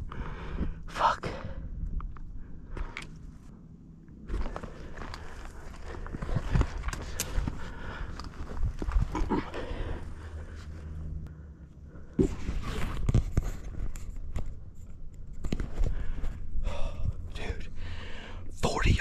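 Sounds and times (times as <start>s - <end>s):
footsteps over rocky ground: 2.2s - 11.0s.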